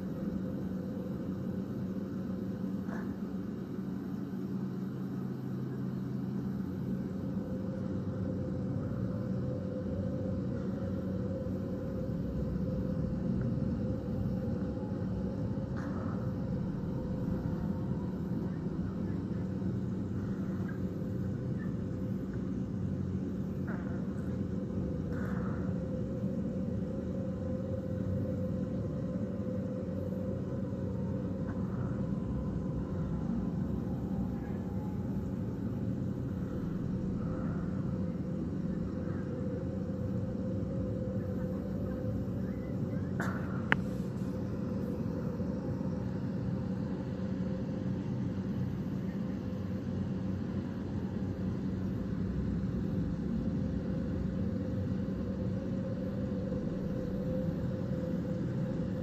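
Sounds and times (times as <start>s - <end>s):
outdoor low rumble and hum: 0.0s - 59.0s.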